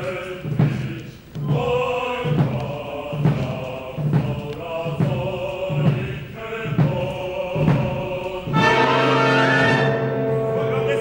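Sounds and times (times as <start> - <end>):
opera chorus singing: 0.0 - 11.0
orchestra playing: 8.5 - 11.0.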